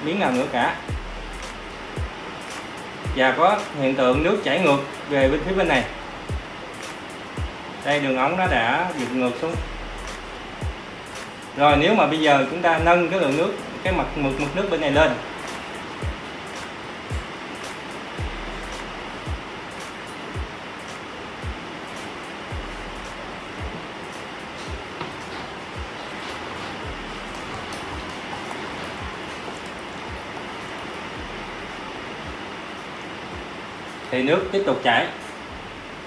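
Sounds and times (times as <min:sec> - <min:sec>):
low thudding beat: 0:00.0 - 0:34.1, 0:35.4 - 0:36.0
hiss-like wash: 0:00.0 - 0:36.0.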